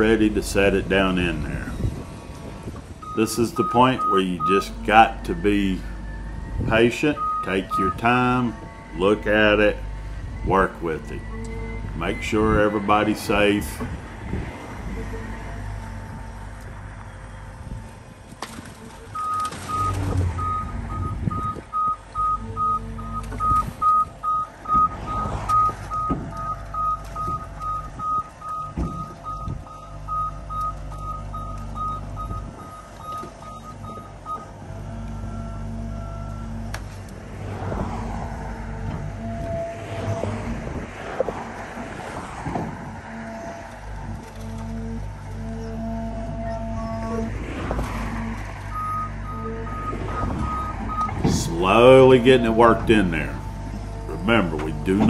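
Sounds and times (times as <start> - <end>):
excavator warning alarm beeping: 0.0 - 37.1, 37.8 - 40.8, 41.5 - 55.0
diesel engine hum: 0.0 - 55.0.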